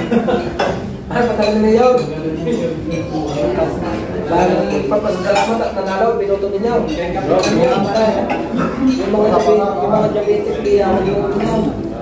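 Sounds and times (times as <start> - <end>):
chatter of people: 0.0 - 12.0
dishes and cutlery clinking: 0.0 - 12.0.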